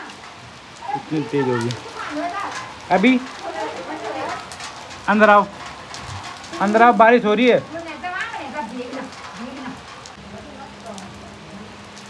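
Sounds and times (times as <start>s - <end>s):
faint voices: 0.0s - 12.0s
rain falling on foliage and concrete: 0.0s - 12.0s.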